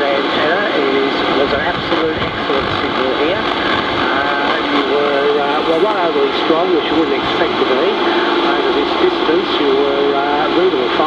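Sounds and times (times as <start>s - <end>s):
radio static and band noise: 0.0s - 11.0s
voice over radio: 0.0s - 11.0s.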